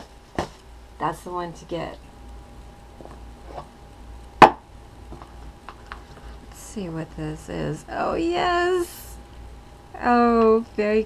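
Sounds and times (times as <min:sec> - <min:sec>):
faint steady hum: 0:00.0 - 0:11.0
sharp knock: 0:04.4 - 0:04.6.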